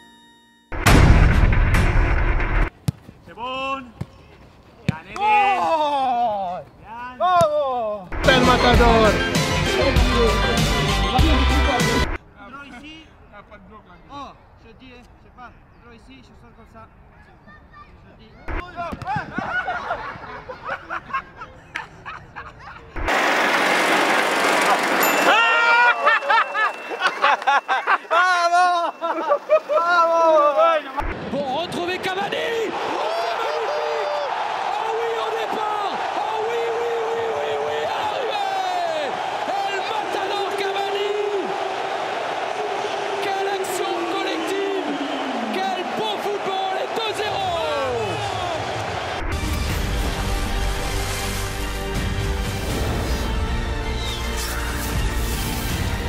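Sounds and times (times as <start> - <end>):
loud rush of noise: 23.0 - 25.3
people whooping and shouting: 24.7 - 30.8, 32.7 - 49.2.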